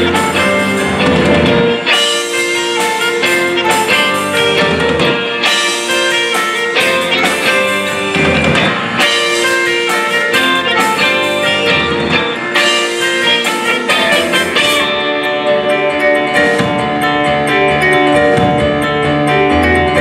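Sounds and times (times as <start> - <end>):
saxophone: 0.0 - 16.8
bass guitar: 0.0 - 20.0
drum kit: 0.0 - 20.0
electric guitar: 0.0 - 20.0
keyboards: 0.0 - 20.0.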